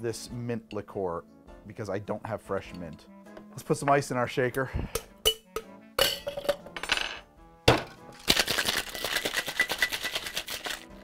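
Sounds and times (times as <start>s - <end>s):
ice cubes clinking in metal tin: 8.2s - 11.0s.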